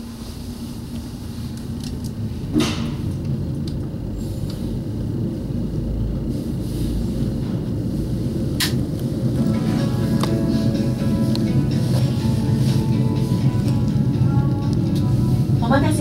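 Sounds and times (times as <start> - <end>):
ropeway cabin low rumble: 0.0 - 16.0.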